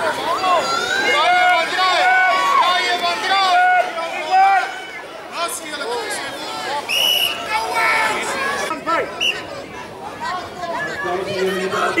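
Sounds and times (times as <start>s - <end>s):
overlapping shouts and chatter: 0.0s - 12.0s.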